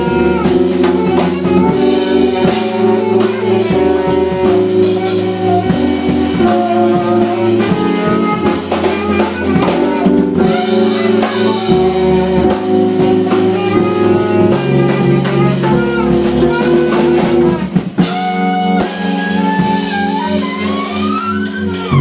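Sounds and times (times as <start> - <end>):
alto saxophone: 0.0 - 22.0
drum kit: 0.0 - 22.0
keyboard chords: 0.0 - 22.0
low bass line: 0.0 - 22.0.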